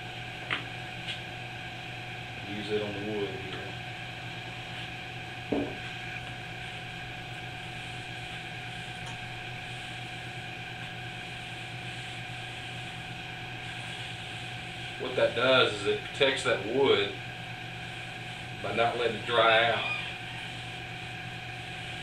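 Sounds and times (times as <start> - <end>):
steady background hum: 0.0 - 22.0
brief knock: 5.5 - 5.8
cloth rag rubbing wood: 10.7 - 15.4, 17.8 - 22.0.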